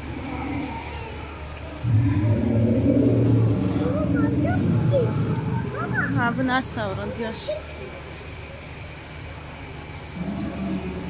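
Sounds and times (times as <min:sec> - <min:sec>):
loud low dinosaur growl: 0:01.8 - 0:06.2, 0:10.1 - 0:11.0.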